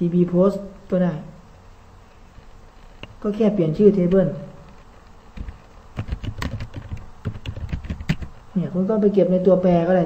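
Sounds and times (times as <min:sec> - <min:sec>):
computer keyboard typing: 0:05.3 - 0:08.4.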